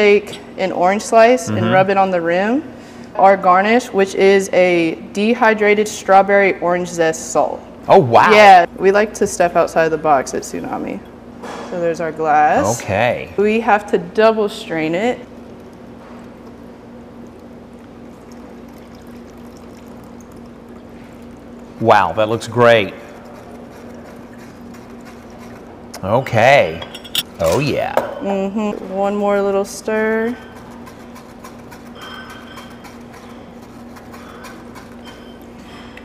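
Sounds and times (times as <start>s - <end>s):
faint steady hum: 0.0s - 36.0s
liquid trickling into glass: 14.8s - 24.1s.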